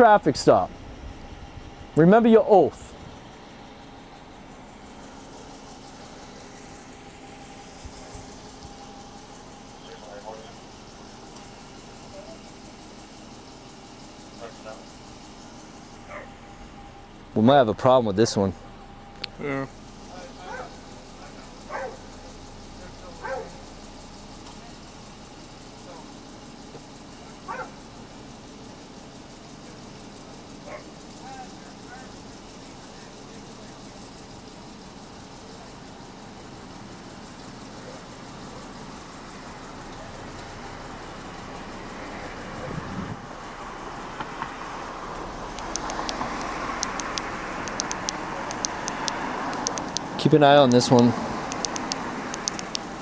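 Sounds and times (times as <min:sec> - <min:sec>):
distant voices: 0:00.0 - 0:53.0
car passing: 0:20.0 - 0:23.7, 0:38.5 - 0:53.0.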